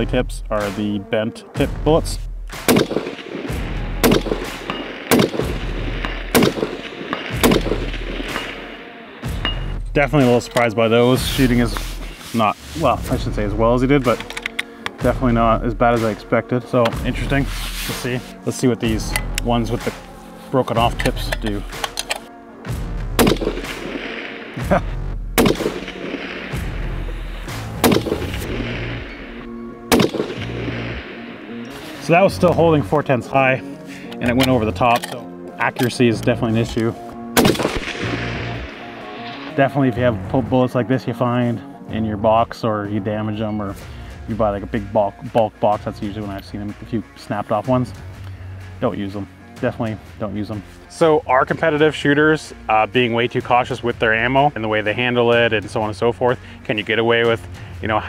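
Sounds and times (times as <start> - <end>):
rifle shots: 2.6 - 8.8, 23.2 - 24.6, 25.4 - 31.4, 37.4 - 39.6.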